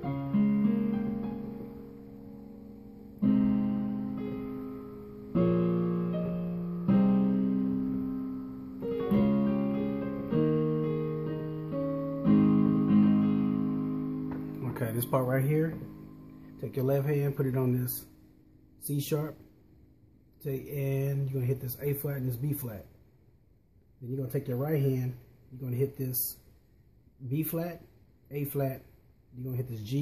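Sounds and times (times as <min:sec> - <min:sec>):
digital keyboard sustained chords: 0:00.0 - 0:19.3.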